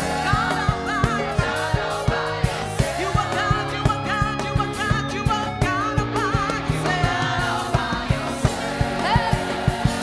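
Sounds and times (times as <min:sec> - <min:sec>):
backing singers: 0:00.0 - 0:10.0
steady drum beat: 0:00.0 - 0:10.0
woman singing lead: 0:00.0 - 0:10.0.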